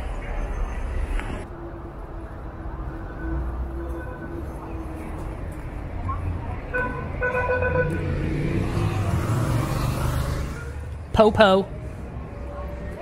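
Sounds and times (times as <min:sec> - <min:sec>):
passing vehicles rumble: 0:00.0 - 0:13.0
car horn tooting: 0:06.7 - 0:08.1.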